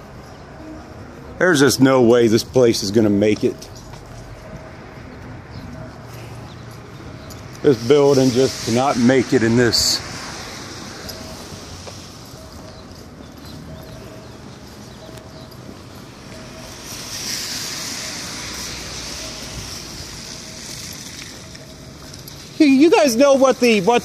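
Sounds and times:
distant traffic: 0.0 - 24.0.

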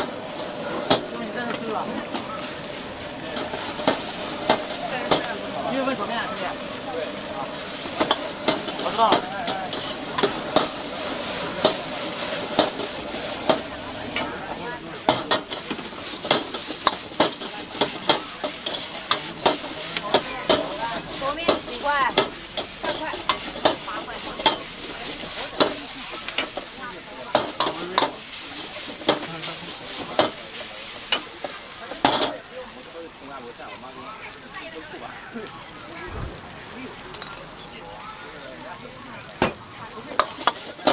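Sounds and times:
noodles sizzling: 0.0 - 40.9
metal ladle scraping a wok: 15.1 - 26.7.

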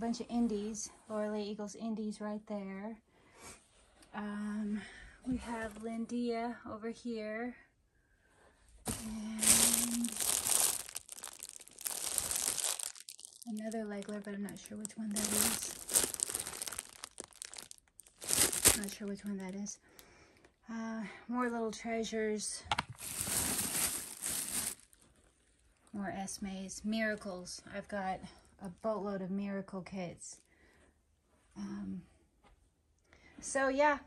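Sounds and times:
plastic bags crinkling: 8.9 - 19.6, 22.9 - 25.1.

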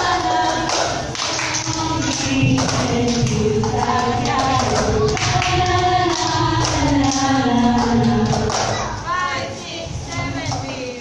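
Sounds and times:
women singing: 0.0 - 11.0
hand claps: 0.1 - 8.9.

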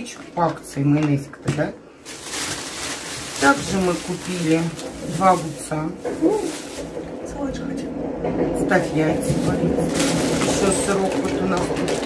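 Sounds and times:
plastic bag crinkling: 1.9 - 7.3, 8.7 - 12.0.

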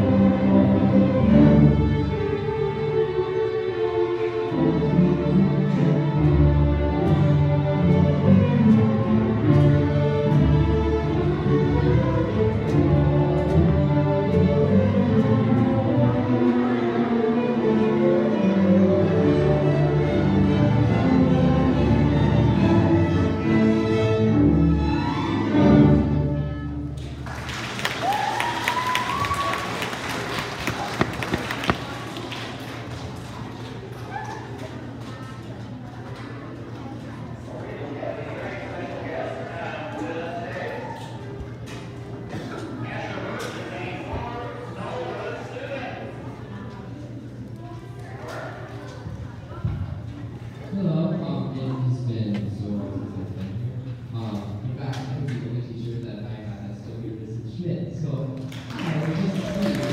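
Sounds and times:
murmur of children's chatter: 0.0 - 26.9, 30.4 - 58.3
string orchestra playing: 0.0 - 27.2
audience clapping: 27.0 - 35.2, 58.4 - 59.9
cheer: 27.3 - 31.3.

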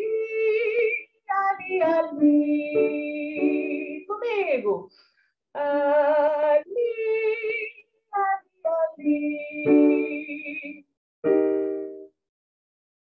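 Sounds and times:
woman singing vocal exercises: 0.0 - 4.9, 5.6 - 10.9.

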